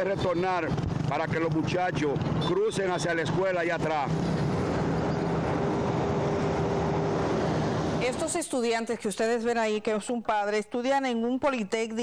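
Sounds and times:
vehicles passing at speed: 0.0 - 8.8.

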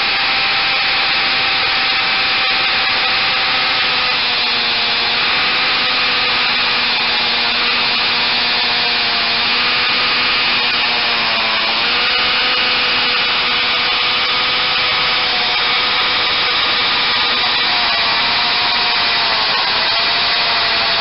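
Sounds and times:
hammer drill boring concrete: 0.0 - 21.0.

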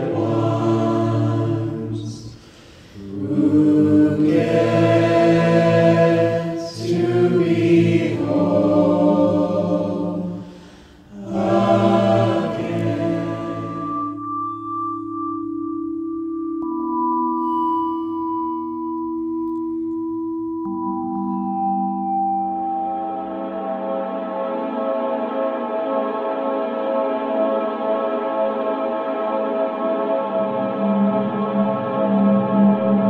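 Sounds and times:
choir singing sustained chords: 0.0 - 15.5, 20.6 - 33.0
ambient drone of held tones: 3.0 - 10.4, 11.1 - 25.8, 29.7 - 33.0.

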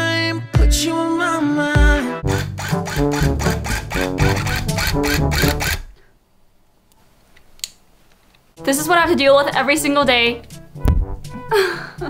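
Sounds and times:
background music with steady beat: 0.0 - 5.9, 8.5 - 12.0.

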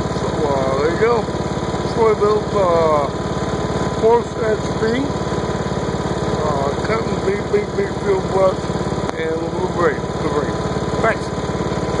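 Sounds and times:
lawn tractor engine running: 0.0 - 12.0.

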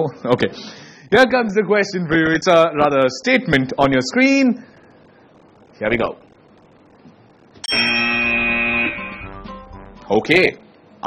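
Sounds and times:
steady electronic buzzer tone: 6.2 - 10.2
buzzer click: 7.6 - 9.4.

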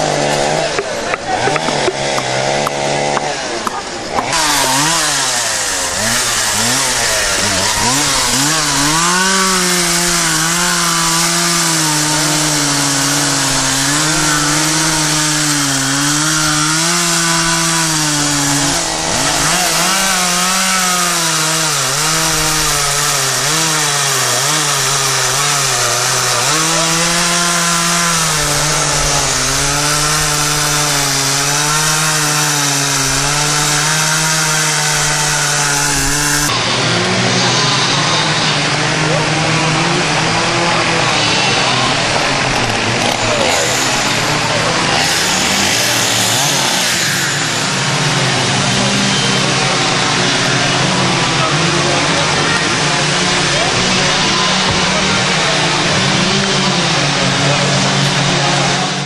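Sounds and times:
chainsaw cutting wood: 0.0 - 59.0
people's voices: 0.0 - 59.0.

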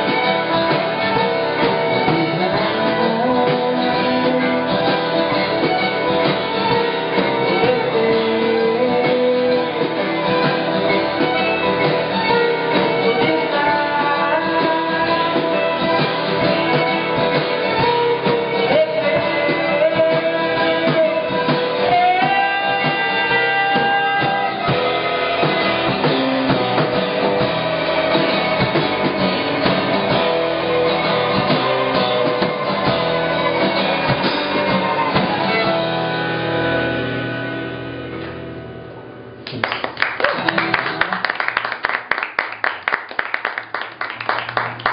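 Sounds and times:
fiddle holding long notes: 0.0 - 38.0
country band playing live: 0.0 - 44.9.

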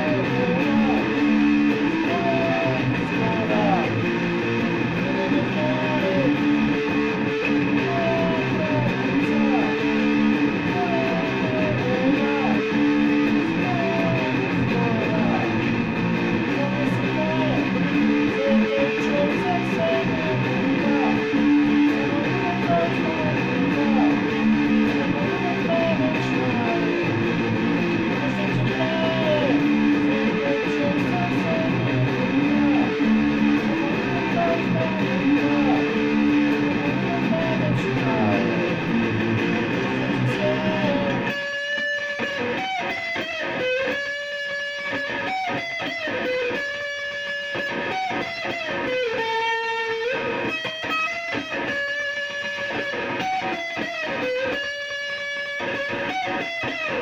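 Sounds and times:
electric guitar with bent notes: 0.0 - 57.0.

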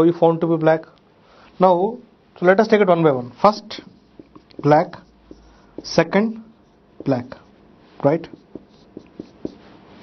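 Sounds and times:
marker writing on whiteboard: 3.4 - 10.0.

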